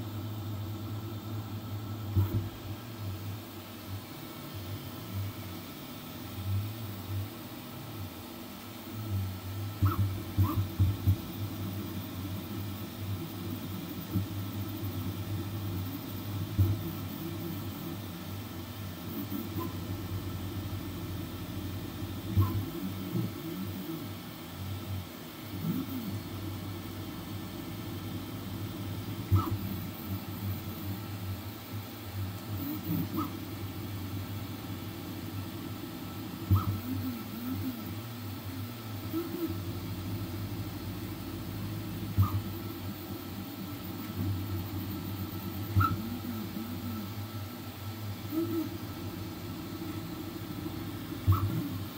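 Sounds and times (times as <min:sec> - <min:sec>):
steady printer hum: 0:00.0 - 0:51.9.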